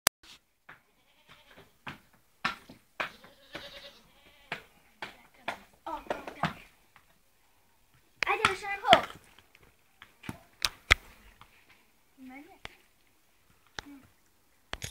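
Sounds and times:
pony hooves knocking: 0.7s - 7.2s, 7.9s - 11.5s.

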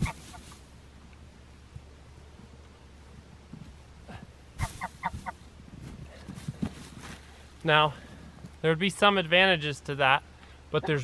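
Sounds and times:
chickens clucking: 0.0s - 0.6s, 4.6s - 5.5s
straw bale thump on snow: 4.6s - 7.2s.

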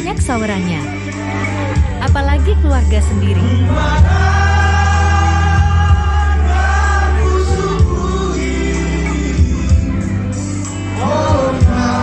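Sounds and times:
amplified music with bass: 0.0s - 12.0s
guests singing along: 3.4s - 10.1s, 10.8s - 12.0s
man singing into microphone: 3.4s - 10.1s, 11.0s - 12.0s.

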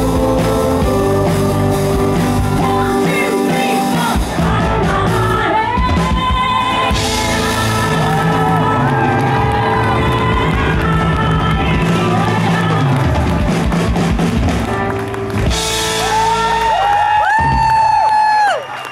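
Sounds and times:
live band playing: 0.0s - 18.9s
crowd cheering: 6.1s - 18.9s.

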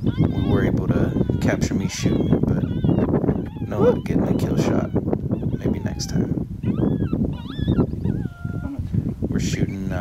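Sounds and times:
electronic animal distress cries: 0.0s - 8.8s
low wind rumble: 0.0s - 10.0s.

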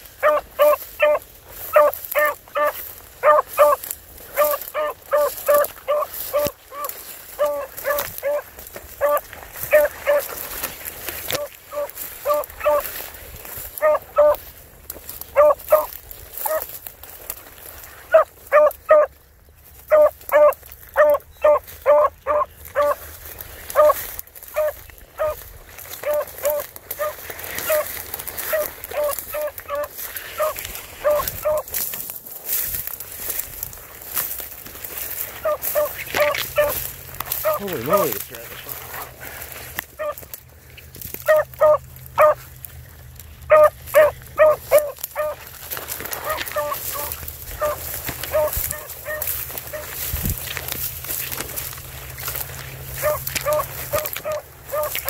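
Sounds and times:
dog barking rapidly: 0.2s - 10.4s, 11.4s - 12.8s, 13.8s - 14.4s, 15.3s - 16.7s, 18.1s - 19.1s, 19.9s - 23.0s, 23.7s - 25.4s, 26.0s - 31.7s, 35.4s - 38.2s, 40.0s - 40.2s, 41.2s - 42.5s, 43.5s - 45.5s, 46.1s - 49.9s, 52.9s - 55.0s.

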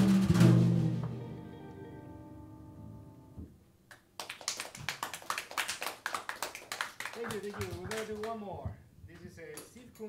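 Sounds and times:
jazz combo final chord: 0.0s - 3.4s
audience applauding: 4.2s - 8.4s.

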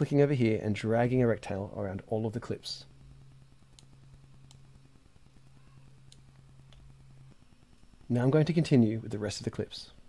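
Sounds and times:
low steady hum: 0.0s - 10.0s
computer mouse clicks: 3.7s - 4.7s.

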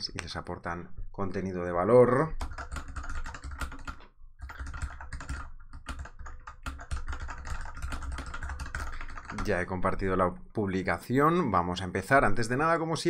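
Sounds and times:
fast typing on keyboard: 2.2s - 9.7s.

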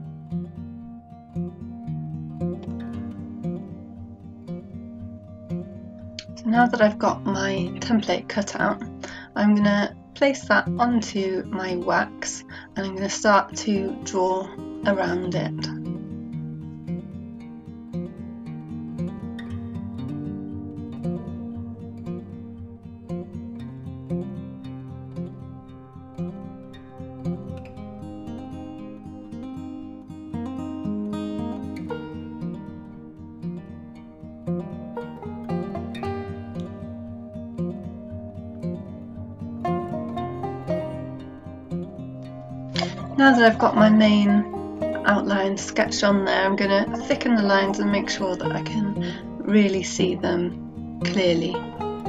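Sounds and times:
plucked acoustic guitar tune: 0.0s - 52.0s.

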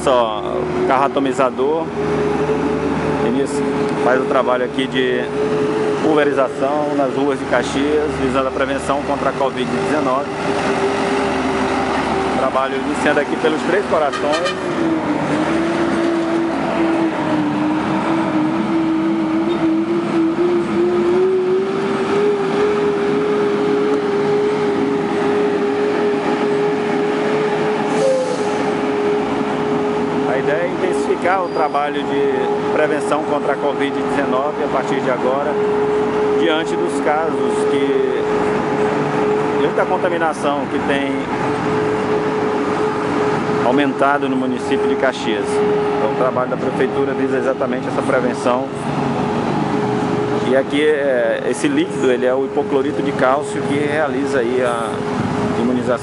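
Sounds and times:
tractor diesel engine: 0.0s - 56.0s.

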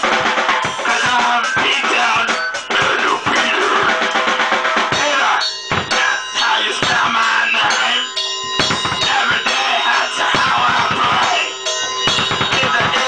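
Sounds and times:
drum beat: 0.0s - 13.0s.

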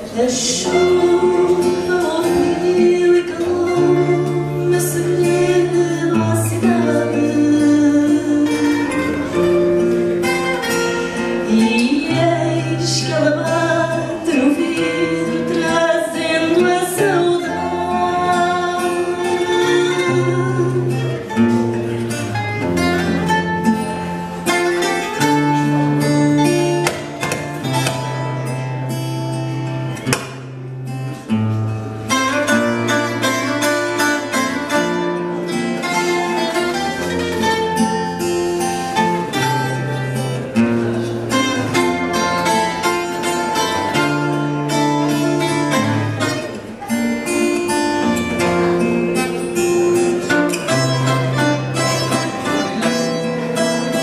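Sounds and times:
plucked guitars playing: 0.0s - 54.0s.

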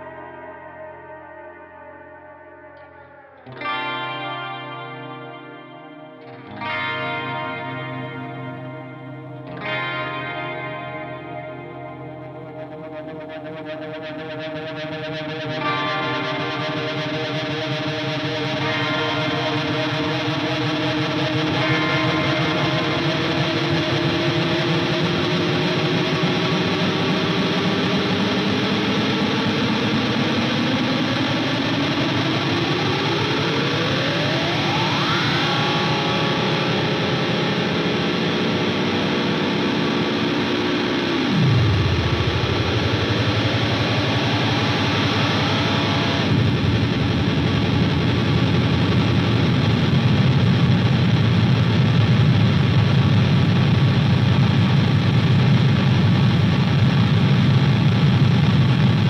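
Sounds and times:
distorted electric guitar drone: 0.0s - 59.0s.

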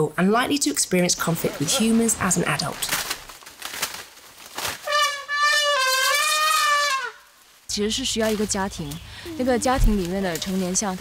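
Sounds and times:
elephant trumpeting: 4.8s - 7.3s.

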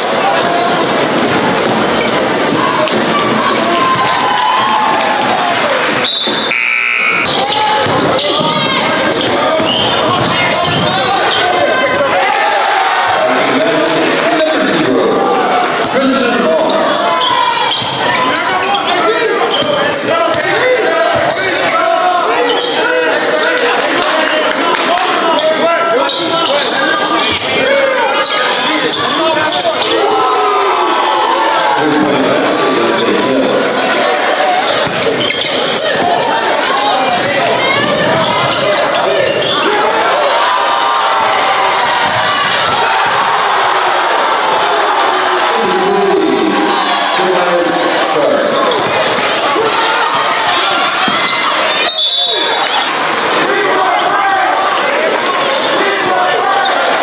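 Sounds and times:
crowd chatter echoing: 0.0s - 57.0s
basketball bouncing on hardwood: 7.8s - 11.0s.

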